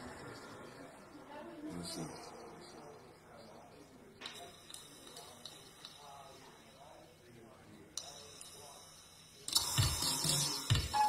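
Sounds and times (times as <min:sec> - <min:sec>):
faint voices: 0:00.0 - 0:10.4.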